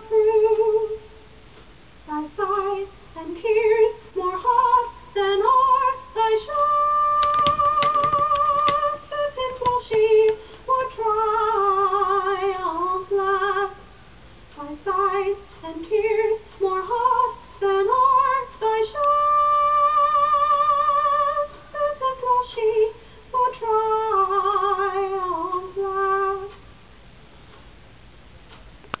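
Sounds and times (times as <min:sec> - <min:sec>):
woman singing with vibrato: 0:00.0 - 0:01.2, 0:02.0 - 0:26.6.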